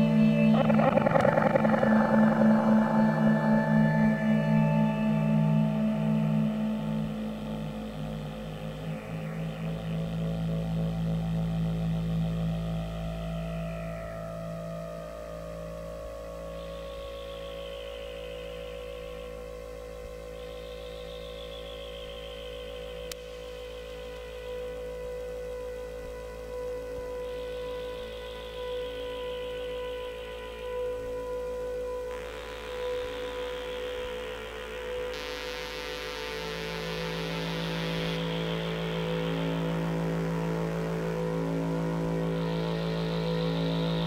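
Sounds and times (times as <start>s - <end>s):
downward-gliding high synth tones: 0.0s - 7.8s
synthesizer drone music: 0.0s - 44.0s.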